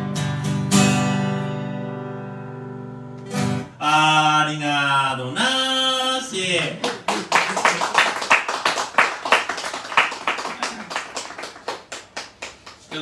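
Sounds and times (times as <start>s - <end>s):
audience applause: 6.8s - 13.0s.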